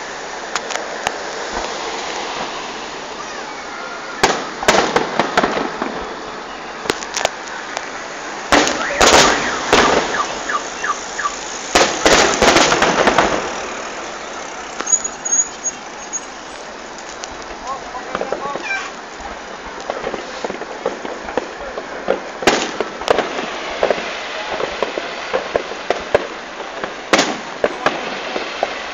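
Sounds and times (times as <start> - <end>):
fireworks bangs and crackles: 0.0 - 28.9
faint fireworks pops: 0.4 - 3.4, 4.1 - 28.9.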